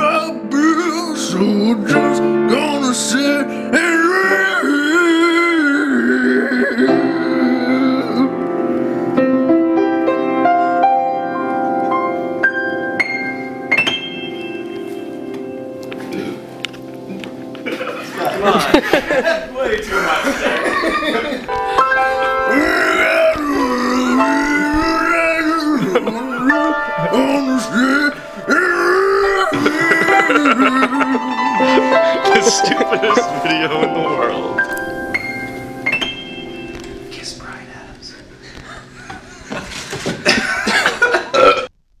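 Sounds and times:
held instrument chords: 6.8 - 39.7
man burping: 16.0 - 16.5, 25.7 - 33.2, 40.2 - 41.8
man singing low note: 22.5 - 34.6.

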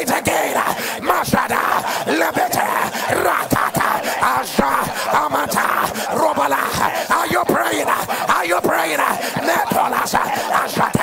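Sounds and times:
man praying aloud rapidly: 0.0 - 11.0.

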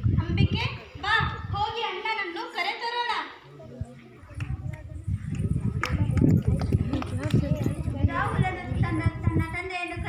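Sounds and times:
voices talking: 0.4 - 10.0.

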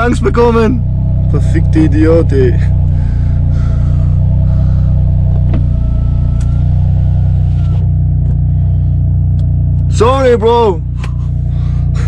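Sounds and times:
car engine droning: 0.0 - 12.0.

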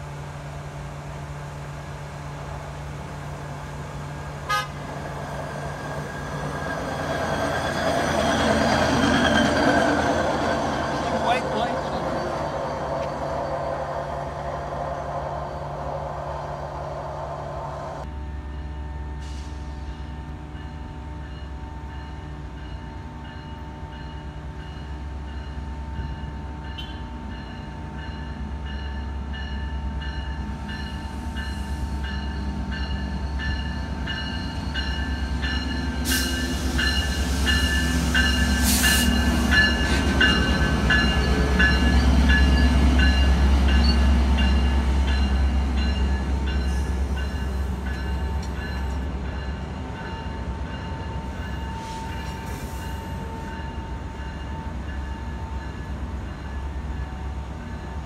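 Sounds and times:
diesel locomotive rumbling: 0.0 - 58.0
train coaches rolling by: 0.0 - 58.0.

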